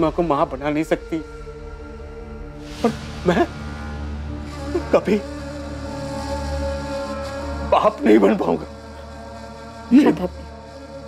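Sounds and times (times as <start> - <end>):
low drone with held tones: 0.0 - 11.0.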